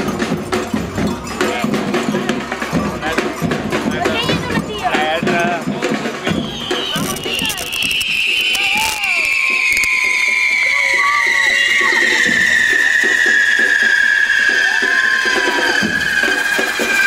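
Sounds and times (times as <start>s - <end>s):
crowd voices: 0.0s - 17.0s
firework whistle: 6.3s - 17.0s
crackling hiss of sparks: 6.9s - 17.0s.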